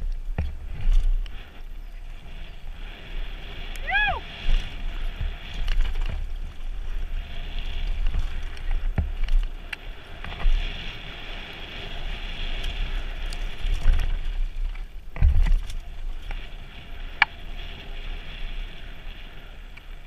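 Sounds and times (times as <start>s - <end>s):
bike rattling over ground: 0.0s - 20.0s
wind rumble on microphone: 0.0s - 20.0s.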